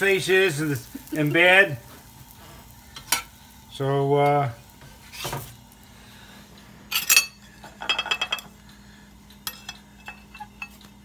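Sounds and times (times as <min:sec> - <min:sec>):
metal spatula scraping griddle: 0:04.8 - 0:05.6.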